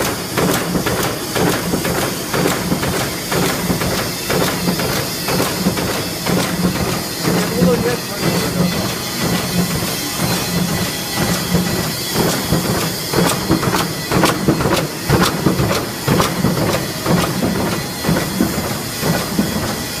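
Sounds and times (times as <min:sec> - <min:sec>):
machine humming with pulsing strokes: 0:00.0 - 0:20.0.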